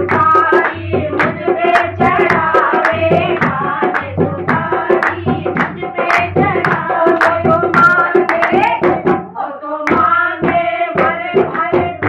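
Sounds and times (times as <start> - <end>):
hand clapping: 0.0 - 9.0, 9.9 - 11.9
hand drum: 0.0 - 12.0
women singing in chorus: 0.0 - 12.0.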